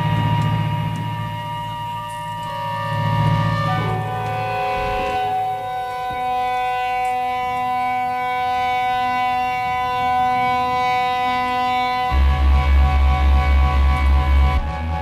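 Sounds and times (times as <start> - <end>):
held organ chord: 0.0 - 15.0
pulsing low bass beat: 0.0 - 15.0.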